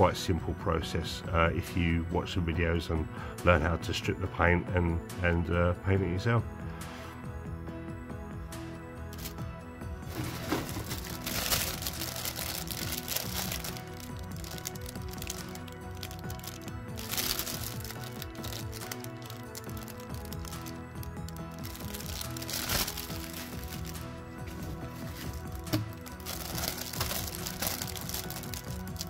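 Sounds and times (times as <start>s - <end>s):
background music: 0.0s - 29.0s
plastic bags crinkling: 9.2s - 9.4s, 10.1s - 29.0s.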